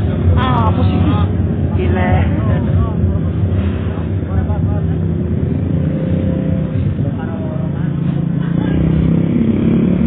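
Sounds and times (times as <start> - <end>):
people talking: 0.0 - 9.2
loud steady low rumble: 0.0 - 10.0.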